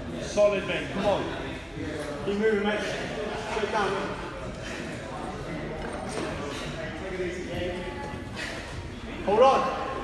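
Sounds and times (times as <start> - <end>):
echoing voices in hall: 0.0 - 10.0.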